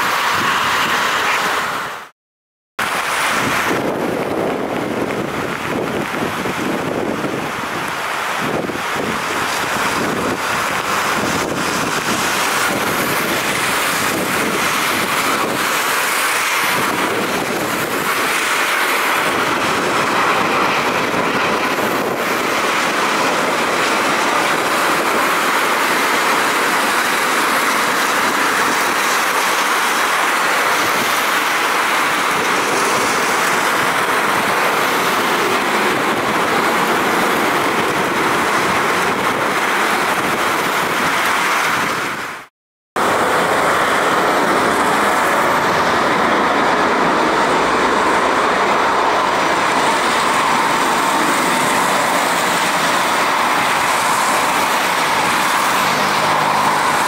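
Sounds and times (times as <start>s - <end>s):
heavy rain: 0.0s - 2.1s, 2.8s - 57.0s
jet engine rushing: 0.0s - 2.1s, 2.8s - 57.0s.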